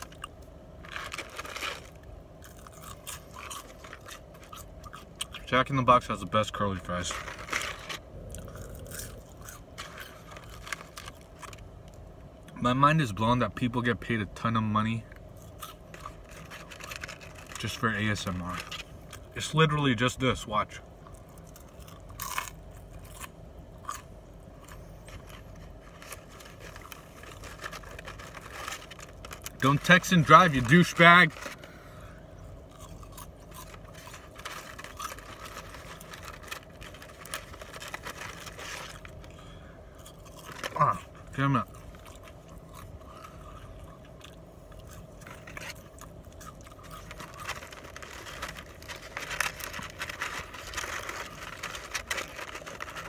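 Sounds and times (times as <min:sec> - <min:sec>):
chewing crunchy fries: 0:00.0 - 0:53.0
low hum: 0:00.0 - 0:53.0.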